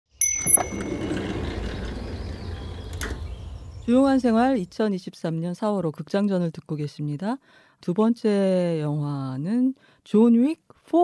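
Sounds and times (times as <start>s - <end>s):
low rumbling background: 0.6s - 4.8s.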